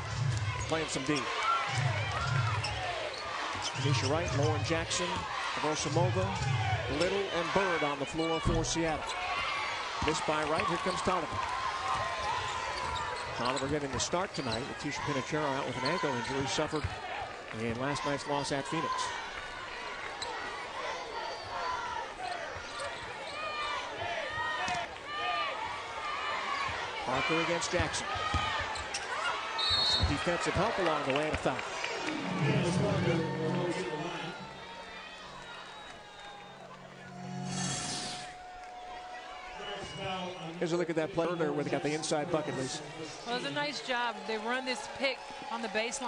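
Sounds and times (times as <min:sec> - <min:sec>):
murmuring arena crowd: 0:00.0 - 0:46.0.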